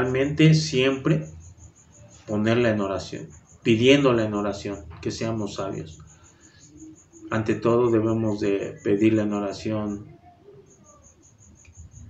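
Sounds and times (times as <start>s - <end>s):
man talking: 0.0s - 1.4s, 2.3s - 6.0s, 7.3s - 10.2s
cricket chirping: 0.0s - 12.0s.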